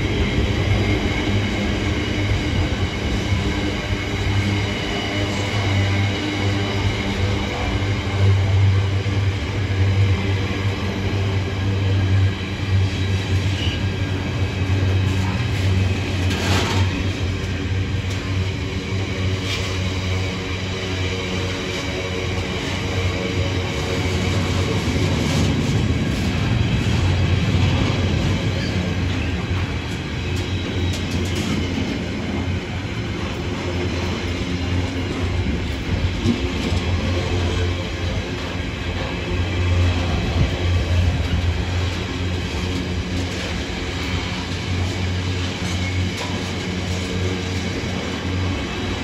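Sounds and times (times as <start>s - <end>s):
freight train wheels rumbling: 0.0s - 49.0s
wheels clicking over rail joints: 24.1s - 49.0s.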